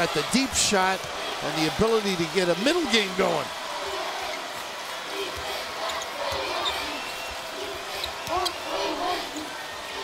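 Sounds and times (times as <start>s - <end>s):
murmur of arena crowd: 0.0s - 10.0s.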